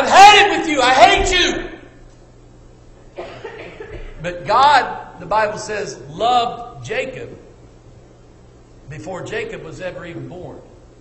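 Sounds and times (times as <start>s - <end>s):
faint room hum: 0.0s - 11.0s
person coughing: 3.2s - 4.3s.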